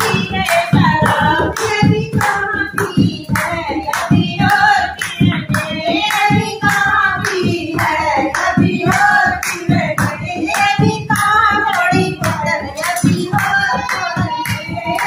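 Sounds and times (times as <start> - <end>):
hand drum beat: 0.0 - 15.0
hand-clapping: 0.0 - 15.0
women singing together: 0.0 - 15.0.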